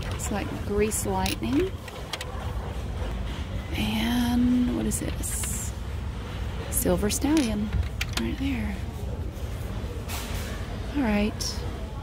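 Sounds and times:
woman speaking: 0.0 - 1.8, 3.7 - 5.7, 6.7 - 8.9, 10.9 - 11.6.

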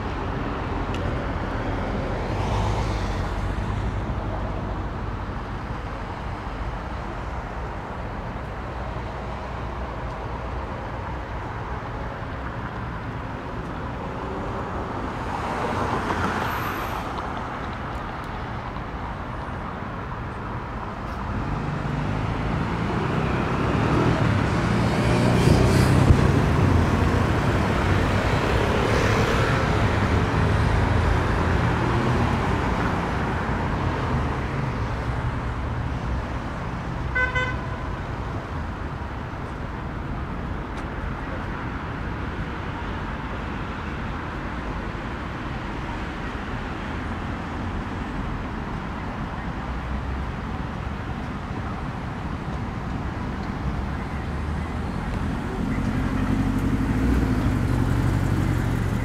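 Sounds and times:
cars passing: 0.0 - 59.0
low rumble of traffic: 0.0 - 59.0.

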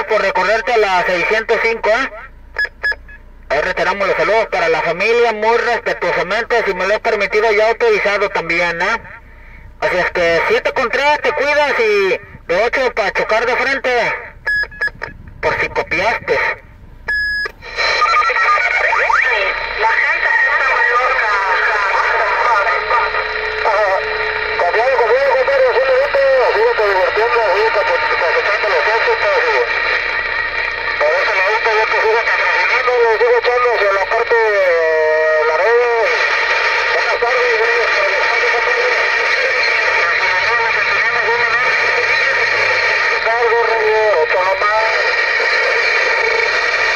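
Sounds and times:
garbled radio voice: 0.0 - 2.3, 3.5 - 16.6, 17.6 - 46.9
radio static hiss: 0.0 - 2.8, 3.4 - 16.8, 17.4 - 46.9.

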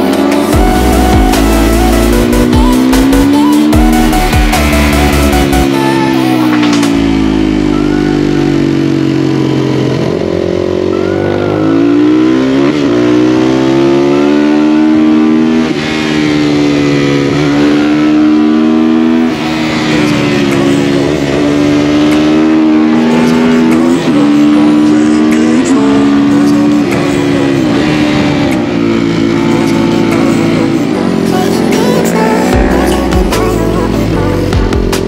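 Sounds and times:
motorcycle engine revving: 0.0 - 35.0.

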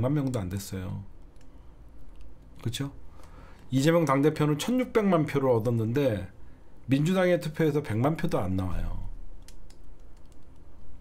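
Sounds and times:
faint low hum: 0.0 - 11.0
keyboard key clicks: 9.4 - 10.7.

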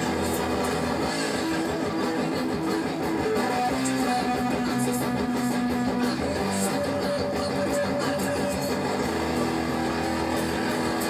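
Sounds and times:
electric guitar chord ringing: 0.0 - 11.0.

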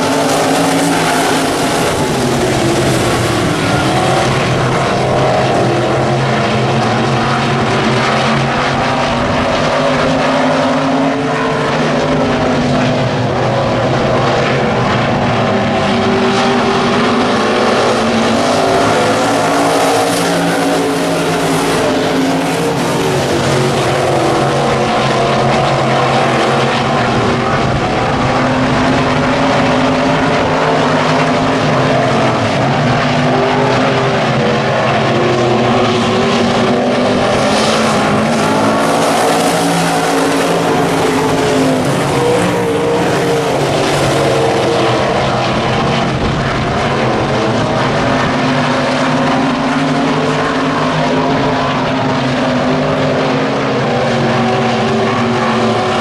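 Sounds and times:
race car engines droning: 0.0 - 56.0
race car passing close: 0.0 - 56.0.

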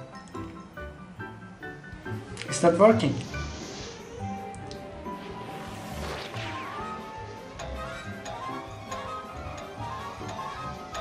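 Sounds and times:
background music: 0.0 - 11.0
quick falling sweep: 5.0 - 7.4
crash sound effect: 5.1 - 7.4.

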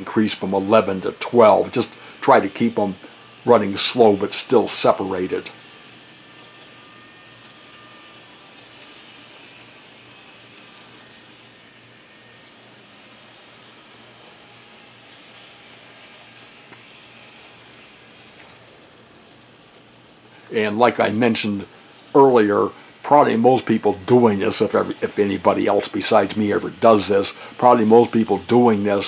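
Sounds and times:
model train motors whirring: 0.0 - 29.0.

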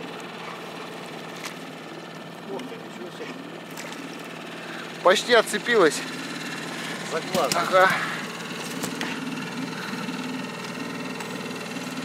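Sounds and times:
outboard motor running: 0.0 - 12.0.

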